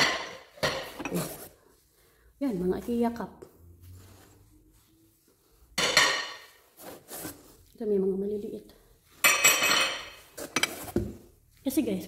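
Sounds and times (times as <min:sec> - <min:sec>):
ceramic dishes clinking: 0:09.2 - 0:10.9.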